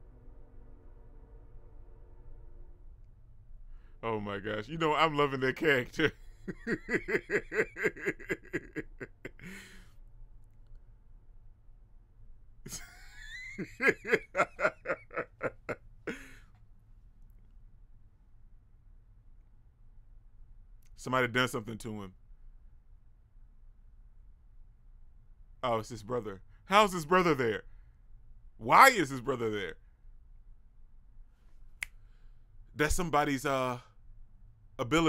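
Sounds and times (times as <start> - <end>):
man laughing: 4.6 - 9.8, 12.7 - 16.4
finger snap: 31.7 - 32.1.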